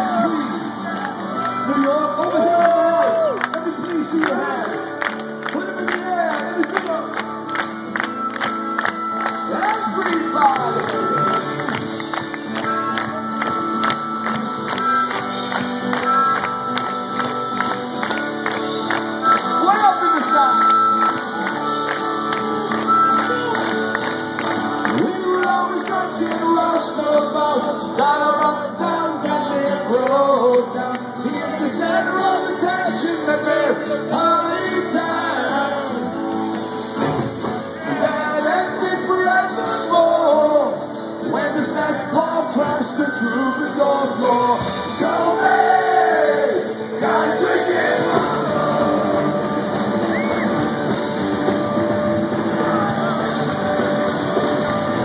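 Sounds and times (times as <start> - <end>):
man singing: 0.0 - 4.9, 24.8 - 36.5, 37.5 - 49.8
punk rock band playing live: 0.0 - 55.0
crowd shouting along: 45.0 - 50.9, 51.5 - 54.9.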